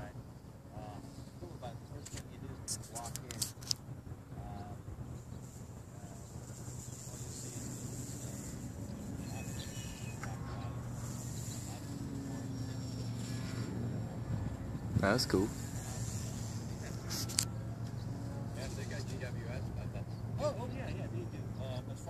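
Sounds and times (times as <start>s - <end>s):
model airplane motor droning: 4.1s - 22.0s.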